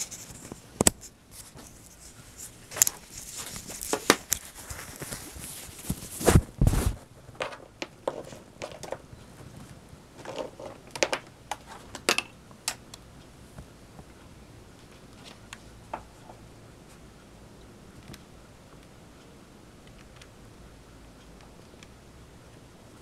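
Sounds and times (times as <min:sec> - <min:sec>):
tablet handling taps and clicks: 0:10.2 - 0:12.8.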